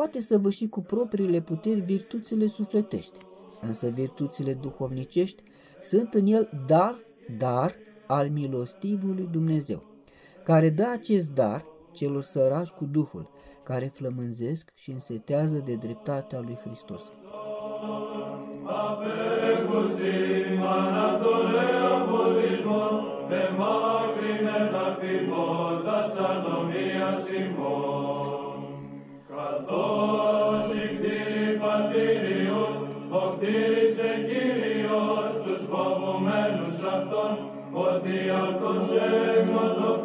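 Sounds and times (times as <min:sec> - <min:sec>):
church chant singing: 0:00.0 - 0:40.0.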